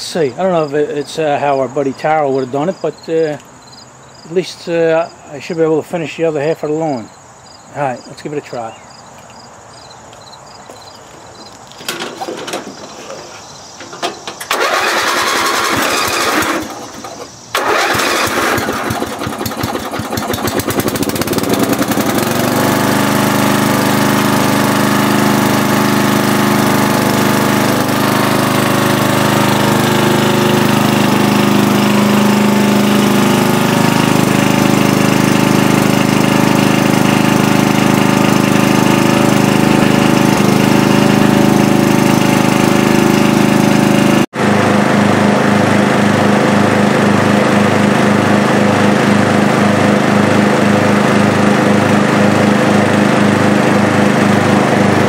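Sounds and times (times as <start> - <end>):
lawn tractor engine starting and running: 0.0 - 3.6, 10.7 - 55.0.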